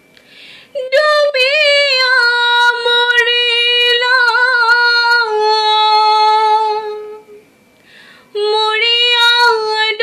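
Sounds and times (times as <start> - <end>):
faint breath: 0.2 - 0.8, 7.8 - 8.4
woman singing folk song: 0.6 - 7.4, 8.2 - 10.0.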